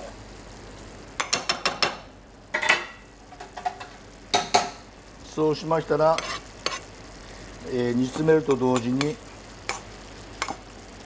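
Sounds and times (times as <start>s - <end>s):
utensil scraping frying pan: 6.0s - 7.0s, 8.1s - 10.7s.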